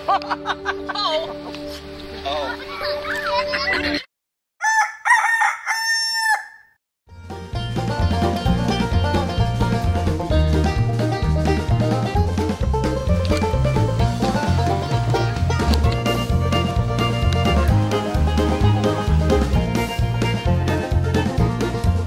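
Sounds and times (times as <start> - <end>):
rooster crowing: 4.6 - 6.8
music with steady bass beat: 7.1 - 22.0.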